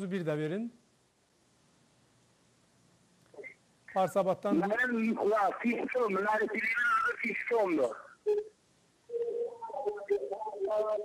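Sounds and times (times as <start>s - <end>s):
person talking: 3.4s - 8.5s, 9.2s - 11.0s.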